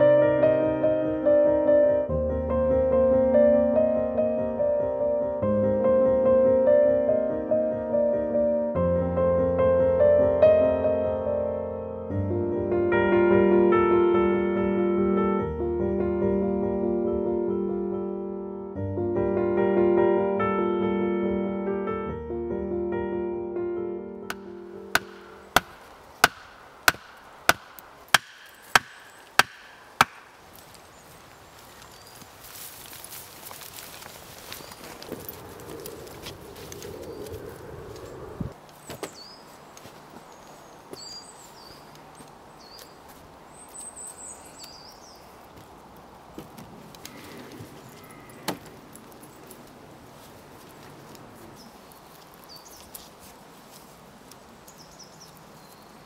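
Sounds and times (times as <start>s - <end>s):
piano music: 0.0s - 30.2s
faint outdoor background: 0.0s - 56.0s
wooden pole clacking on wood: 24.3s - 30.3s
axe chopping wood: 24.3s - 30.4s.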